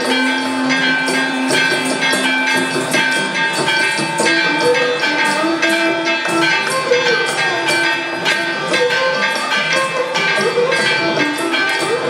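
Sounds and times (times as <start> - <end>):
music with long held notes: 0.0 - 12.0
steady percussion beat: 0.0 - 12.0.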